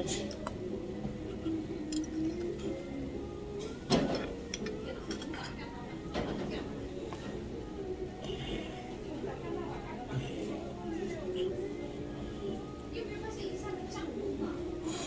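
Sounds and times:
dishes and chopsticks clinking: 0.0s - 0.6s, 1.2s - 2.8s, 3.6s - 7.3s
background music: 0.0s - 15.0s.

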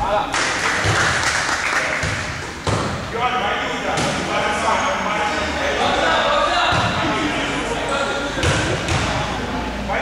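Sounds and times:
people chattering: 1.8s - 10.0s
basketball bouncing on court floor: 2.0s - 3.0s, 8.4s - 9.2s.

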